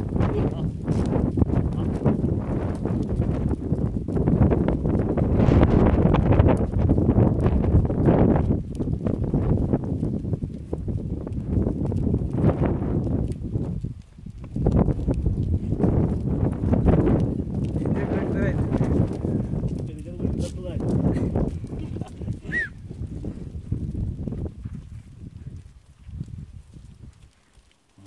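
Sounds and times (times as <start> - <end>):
goat hooves shuffling and clicking: 0.0 - 28.0.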